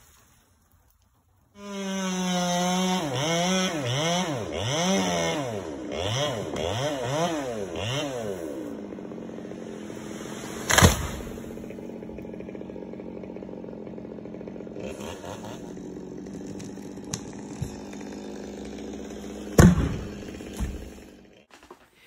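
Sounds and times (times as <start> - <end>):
chainsaw revving and idling: 1.6 - 21.5
loud thump: 19.6 - 20.9.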